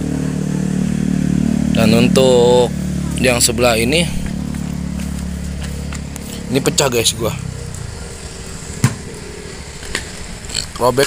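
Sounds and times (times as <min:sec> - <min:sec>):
low background rumble: 0:00.0 - 0:10.9.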